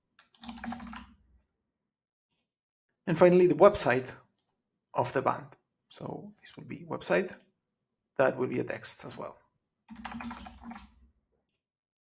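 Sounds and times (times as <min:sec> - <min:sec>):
typing on computer keyboard: 0:00.2 - 0:01.1, 0:09.9 - 0:10.9.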